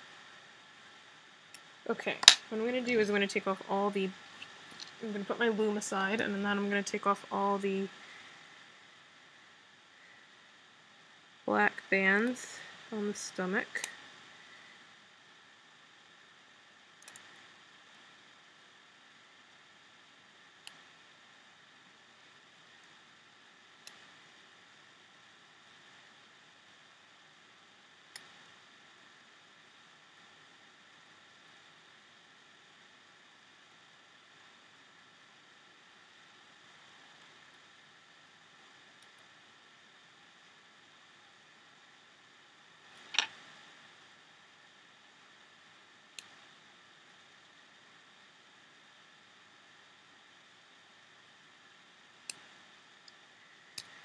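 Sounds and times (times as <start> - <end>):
faint steady hiss: 0.0 - 54.0.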